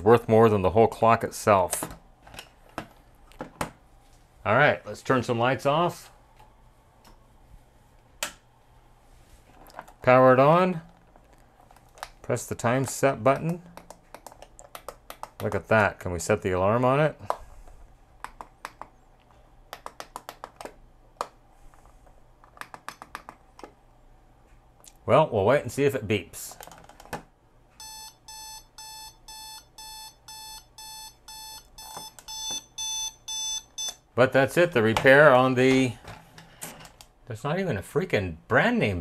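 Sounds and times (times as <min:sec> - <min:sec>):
alarm clock buttons clicking: 0:27.8 - 0:34.0.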